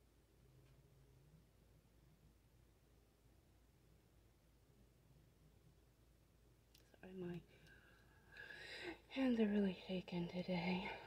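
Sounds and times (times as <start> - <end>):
woman speaking softly: 6.9 - 7.6, 8.9 - 11.0.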